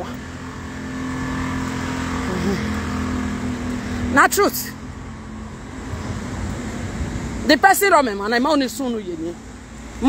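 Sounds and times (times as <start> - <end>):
traffic passing: 0.0 - 10.0
vehicle engine humming: 0.0 - 10.0.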